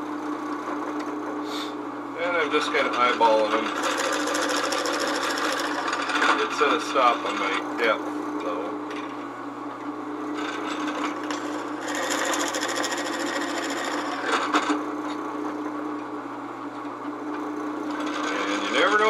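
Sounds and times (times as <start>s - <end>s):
drill press motor humming: 0.3s - 19.0s
drill bit cutting into wood: 10.8s - 14.6s.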